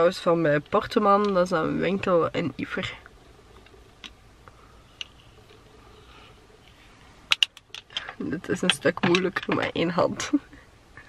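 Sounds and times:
eyeglasses clicking and tapping: 7.3s - 9.7s.

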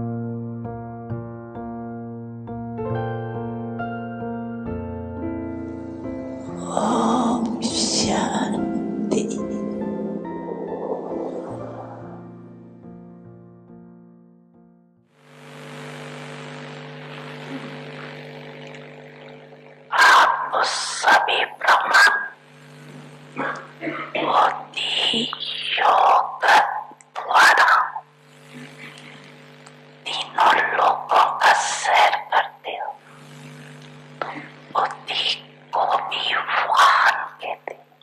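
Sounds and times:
music: 0.0s - 15.3s
electrical hum: 5.2s - 13.7s, 15.2s - 38.0s
woman speaking into a microphone: 6.6s - 9.5s, 20.0s - 22.3s, 23.4s - 28.0s, 30.1s - 33.0s, 34.2s - 37.8s.

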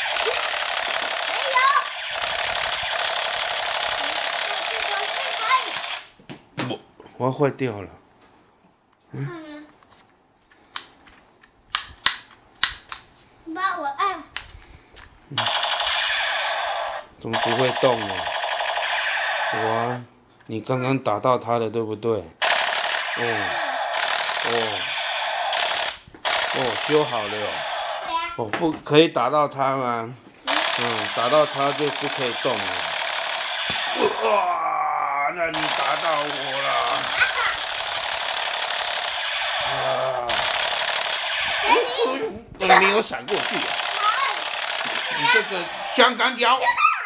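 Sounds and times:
toy gun electronic rattle: 0.0s - 6.2s, 15.4s - 19.6s, 22.4s - 28.1s, 30.5s - 34.0s, 35.6s - 39.6s, 40.3s - 42.0s, 42.8s - 46.2s.

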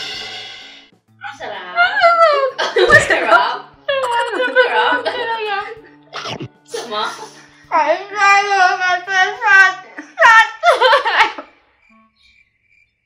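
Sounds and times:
soft music: 0.0s - 12.3s
woman wailing and sobbing: 1.8s - 7.1s, 10.0s - 11.4s.

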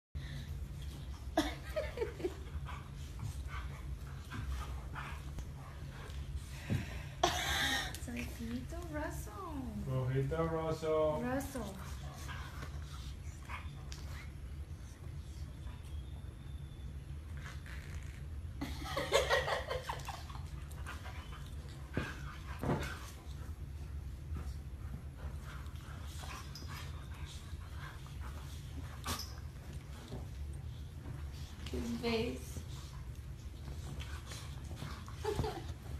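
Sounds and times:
steady low hum: 0.2s - 35.9s.

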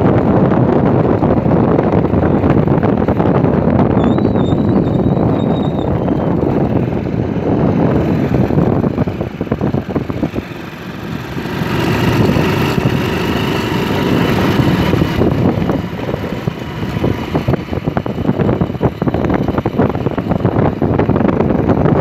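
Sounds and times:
vehicle engine running: 0.0s - 22.0s
wind on microphone: 0.0s - 22.0s.

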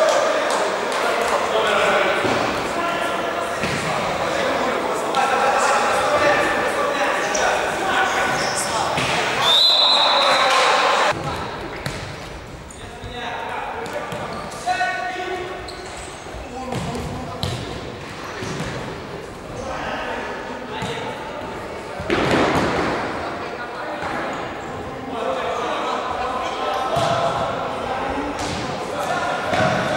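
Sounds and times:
players shouting: 0.0s - 11.2s
short high whistle: 9.4s - 10.4s.

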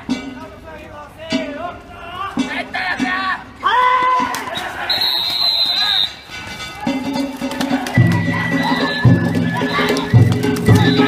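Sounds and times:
procession music with low notes: 0.0s - 3.6s, 4.2s - 11.0s
crowd noise: 0.0s - 11.0s.

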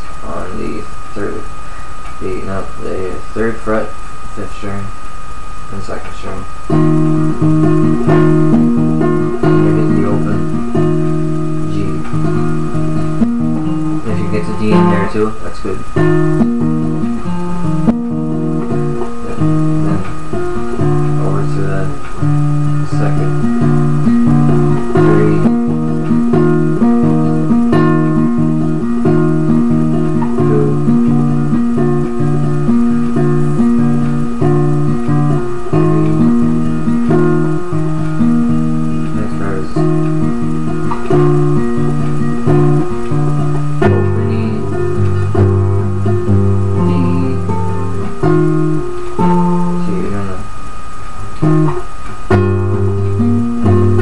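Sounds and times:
fingerstyle classical guitar: 6.0s - 54.0s.

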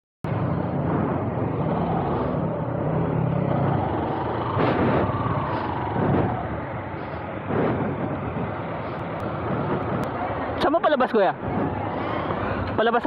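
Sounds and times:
road and wind noise: 0.2s - 13.0s.

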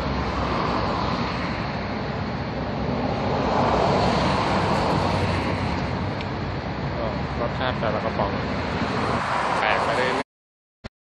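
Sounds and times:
outdoor traffic noise: 0.0s - 10.2s.

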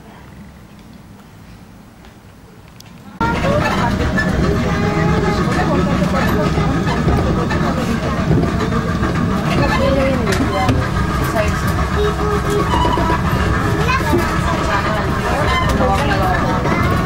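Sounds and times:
people talking: 3.0s - 17.0s
small vehicle engine running: 3.2s - 17.0s.

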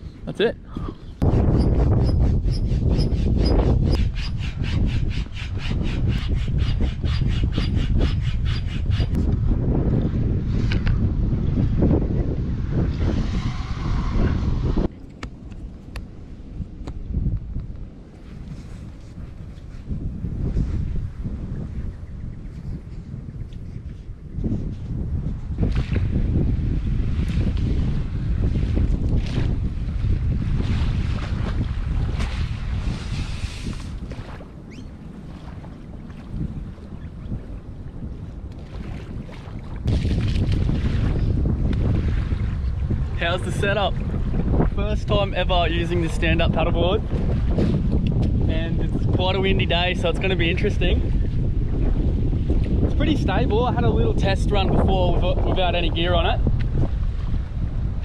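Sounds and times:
wind on microphone: 0.0s - 58.0s.

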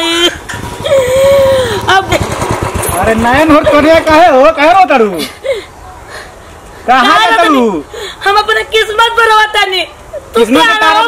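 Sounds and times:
motorcycle engine thudding: 0.3s - 4.4s.

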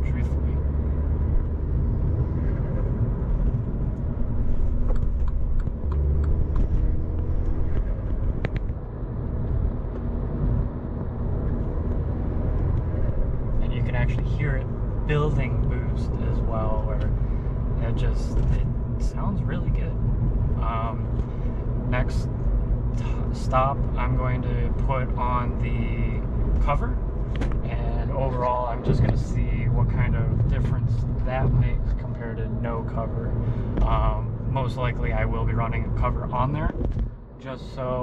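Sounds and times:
car engine droning: 0.0s - 38.0s
road noise: 0.0s - 38.0s.

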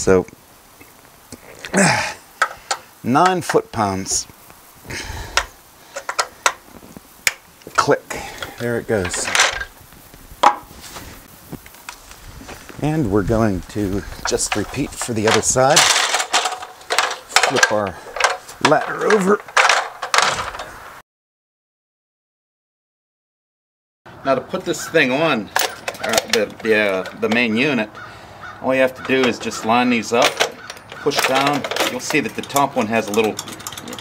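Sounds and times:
metallic clicks of hand tools: 30.2s - 34.0s.

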